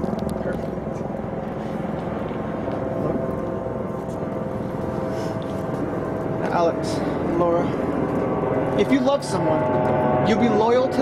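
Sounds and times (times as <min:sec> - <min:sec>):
distant engine rumble: 0:00.0 - 0:11.0
faint steady hums: 0:00.0 - 0:11.0.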